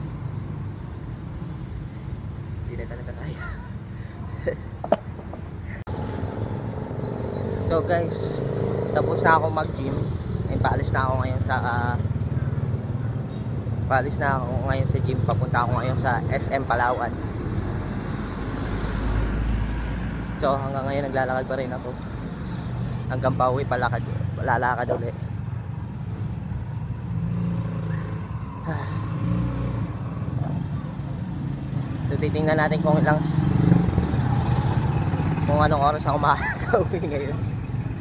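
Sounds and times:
low rumble of street traffic: 0.0s - 38.0s.

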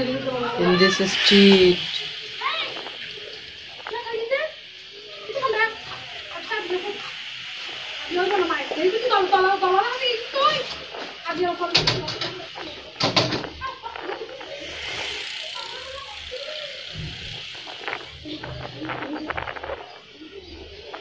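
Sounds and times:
low voices: 0.0s - 21.0s.

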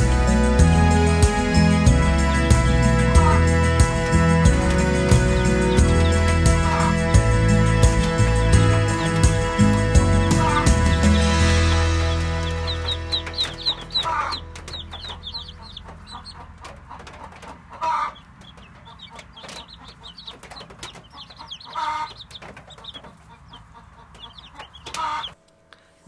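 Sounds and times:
chicks peeping: 0.0s - 25.4s
louder lower bird call: 8.6s - 16.3s.

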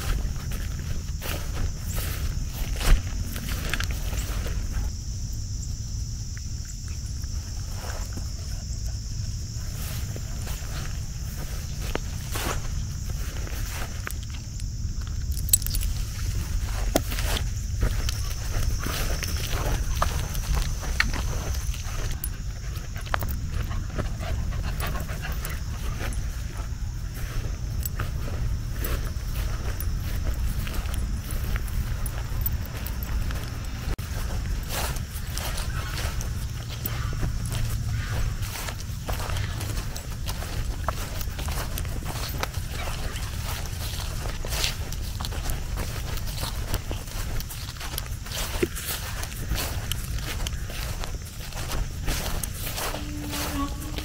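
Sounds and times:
footfalls in grass: 0.0s - 4.8s, 27.2s - 54.0s
grass rustling: 0.0s - 54.0s.

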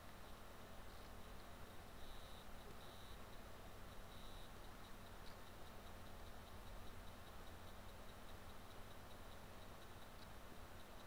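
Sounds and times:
low hum and hiss: 0.0s - 11.0s
soft high ticking: 0.1s - 11.0s.

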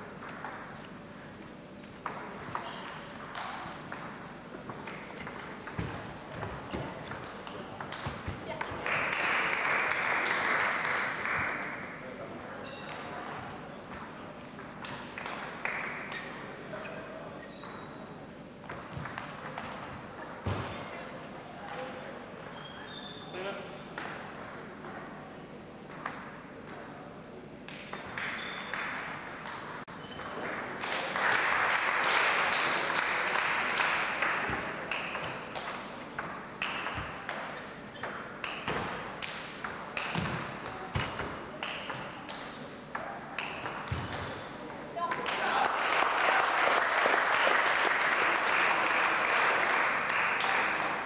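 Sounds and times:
sports hall murmur: 0.0s - 51.0s.

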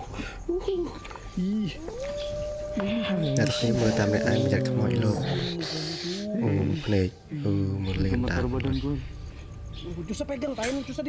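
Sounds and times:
eerie wavering moan: 0.5s - 11.0s
high-pitched wail: 1.8s - 6.8s.

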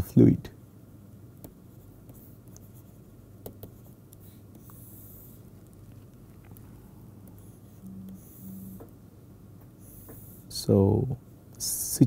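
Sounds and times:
faint low hum: 0.0s - 12.0s
stylus scratching on pen tablet: 1.7s - 6.6s, 7.3s - 8.9s.

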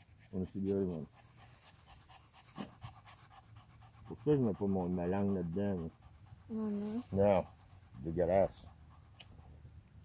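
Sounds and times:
small dog panting: 0.0s - 10.0s.

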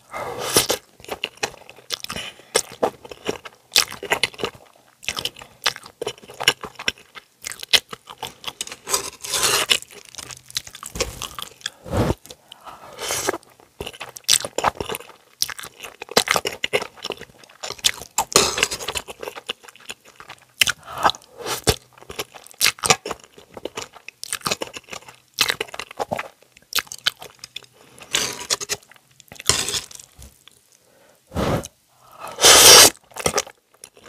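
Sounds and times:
chewing noodles: 0.5s - 30.8s, 32.4s - 34.0s.

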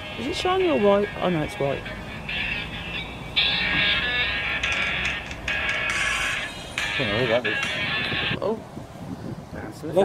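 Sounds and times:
phone musical ringtone: 0.0s - 8.4s.

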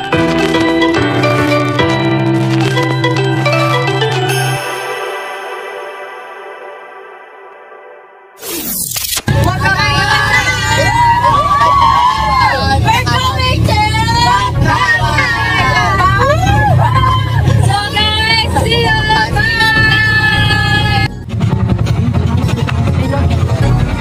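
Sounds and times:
vehicle rumble: 9.2s - 24.0s
young voices shouting excitedly: 9.6s - 21.1s.

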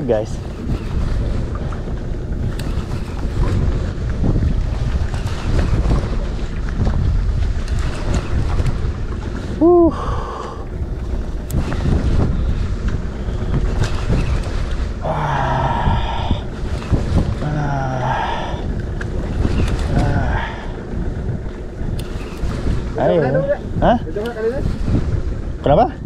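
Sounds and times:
wind buffeting microphone: 0.0s - 26.0s
man crying out with effort: 9.6s - 10.0s.

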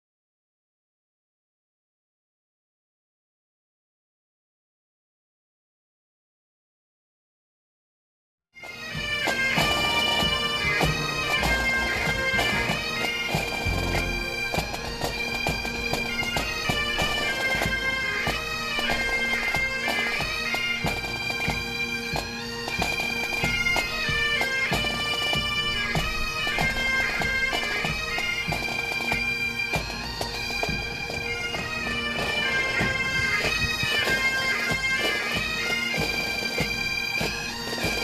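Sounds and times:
bagpipes playing: 8.6s - 38.0s.

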